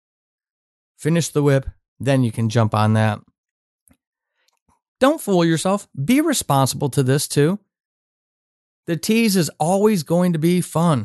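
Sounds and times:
man speaking: 0:01.0 - 0:03.3, 0:05.0 - 0:07.6, 0:08.9 - 0:11.0.

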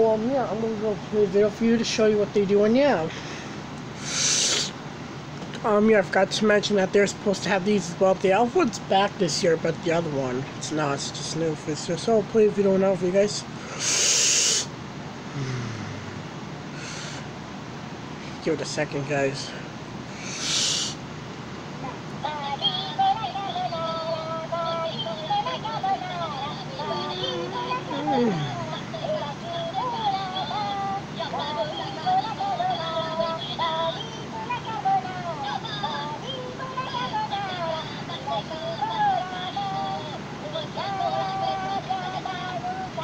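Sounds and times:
breath puff on microphone: 0:04.0 - 0:04.8
man humming: 0:15.3 - 0:17.3, 0:20.2 - 0:21.0, 0:26.8 - 0:28.9
toys singing in high voices: 0:22.2 - 0:43.0.

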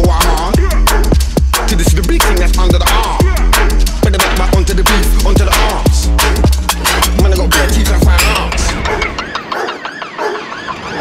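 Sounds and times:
wailing siren sample: 0:07.8 - 0:11.0.

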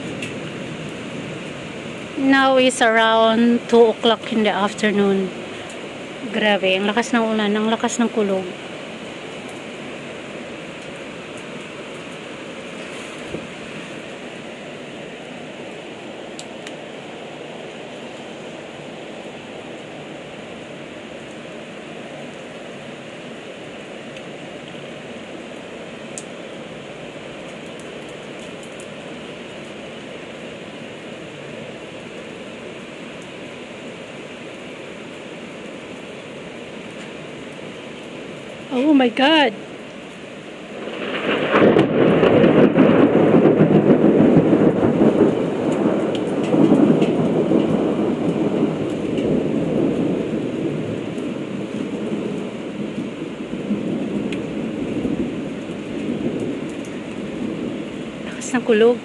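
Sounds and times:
heavy rain downpour: 0:00.0 - 0:59.0.

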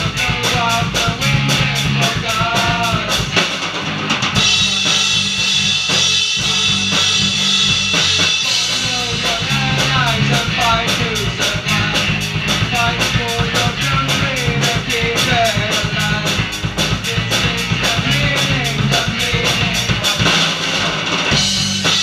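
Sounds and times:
bass guitar: 0:00.0 - 0:22.0
fast drum beat: 0:00.0 - 0:22.0.

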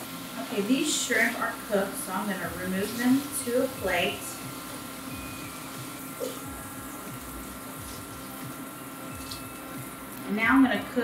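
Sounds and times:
shrimp sizzling in a skillet: 0:00.0 - 0:11.0.

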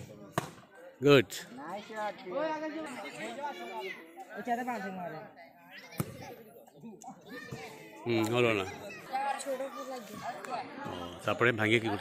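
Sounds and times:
boys chattering and calling: 0:00.0 - 0:12.0.

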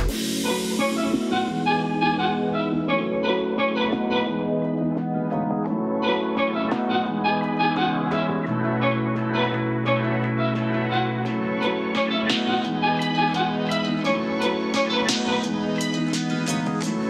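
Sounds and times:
instrumental background music: 0:00.0 - 0:17.0.

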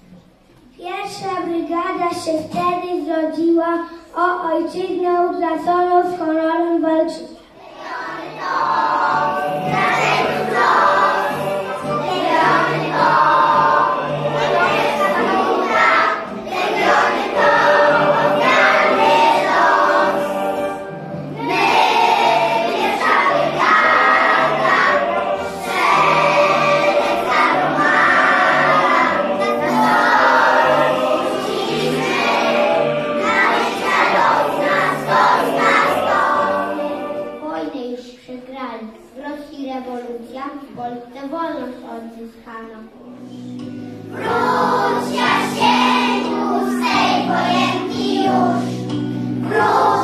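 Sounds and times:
children singing in unison: 0:07.5 - 0:37.6, 0:43.9 - 0:50.0.

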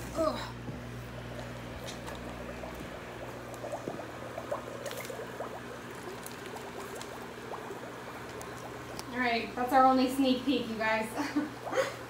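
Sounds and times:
low steady hum: 0:00.0 - 0:12.0
air bubbling through water: 0:01.1 - 0:09.1, 0:11.4 - 0:12.0.

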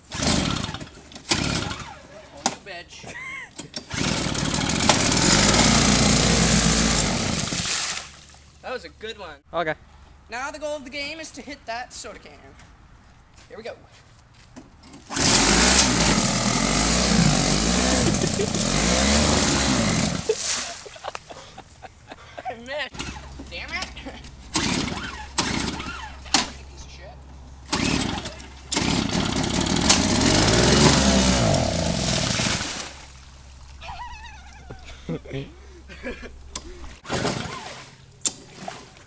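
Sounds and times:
snow blower engine churning water: 0:00.0 - 0:02.3, 0:03.8 - 0:08.4, 0:15.1 - 0:21.1, 0:23.0 - 0:27.0, 0:27.6 - 0:34.3, 0:36.0 - 0:39.0.

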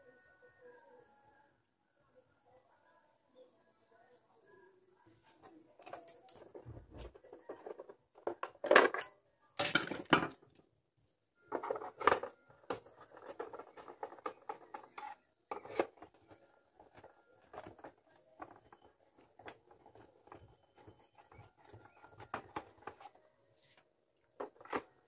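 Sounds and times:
hands and tool on plastic case: 0:05.4 - 0:10.6, 0:11.5 - 0:25.0.

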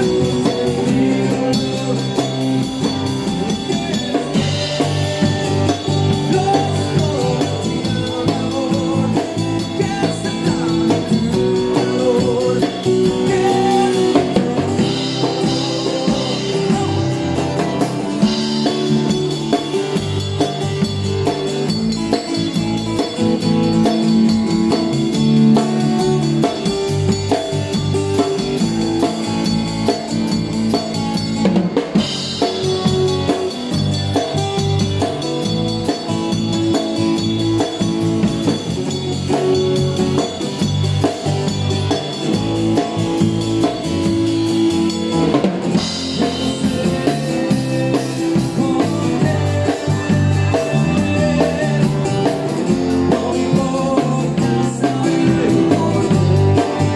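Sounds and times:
bass line: 0:00.0 - 0:56.9
drum kit: 0:00.0 - 0:56.9.

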